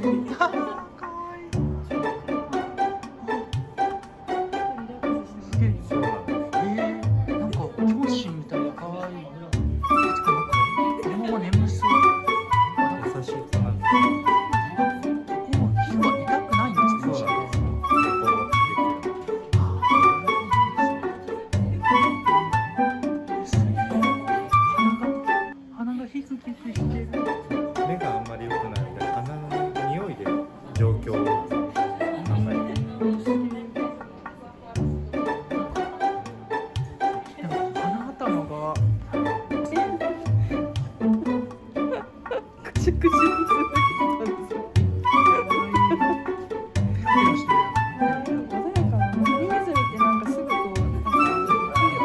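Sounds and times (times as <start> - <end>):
plucked double bass: 1.5 - 4.9, 5.5 - 25.4, 26.8 - 33.3, 34.8 - 52.0.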